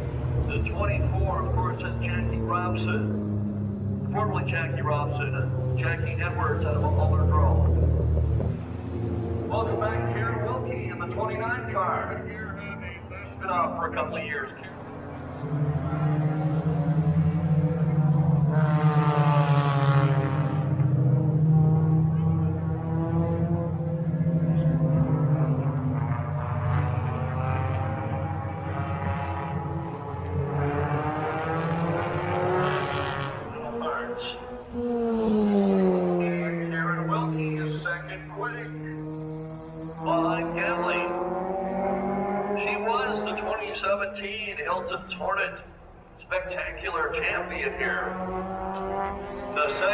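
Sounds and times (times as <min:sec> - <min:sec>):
stock car engines droning: 0:00.0 - 0:49.9
car passing by: 0:14.7 - 0:43.9, 0:47.8 - 0:49.9.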